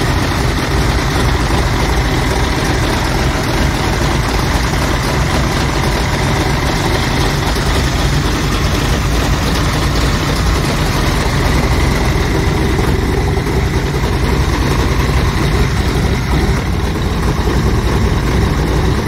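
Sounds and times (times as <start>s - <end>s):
boat engine idling: 0.0s - 19.0s.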